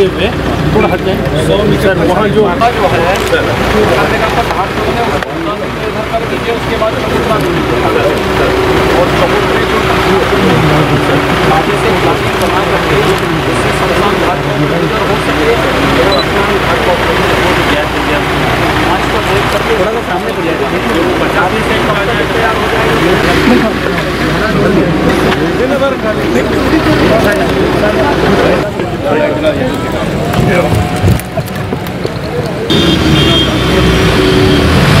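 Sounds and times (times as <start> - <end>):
car engines: 0.0 - 35.0
crowd murmuring: 0.0 - 35.0
men talking in a group: 0.0 - 35.0
steady engine hum: 0.0 - 35.0.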